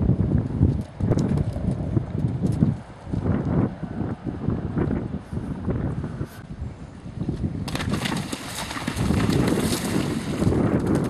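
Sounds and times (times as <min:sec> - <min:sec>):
hoofbeats on firm ground: 0:07.6 - 0:11.0
horse hooves splashing in water: 0:07.6 - 0:11.0.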